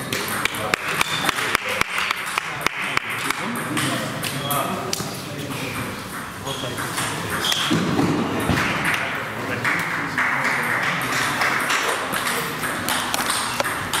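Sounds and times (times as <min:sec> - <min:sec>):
background voices in a hall: 0:00.0 - 0:14.0
table tennis balls clicking: 0:00.0 - 0:14.0.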